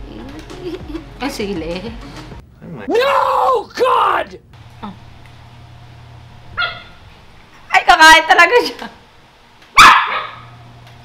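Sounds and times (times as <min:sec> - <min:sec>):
small dog barking and yelping: 0:06.6 - 0:07.0, 0:09.8 - 0:10.5.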